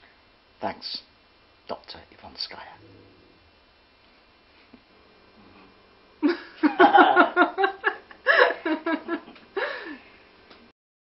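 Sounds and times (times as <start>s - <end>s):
woman laughing: 6.2s - 10.0s.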